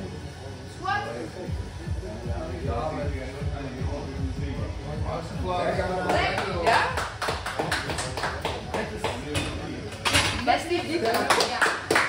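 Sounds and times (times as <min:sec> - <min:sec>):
people clapping and cheering: 0:05.9 - 0:10.1, 0:10.8 - 0:12.0.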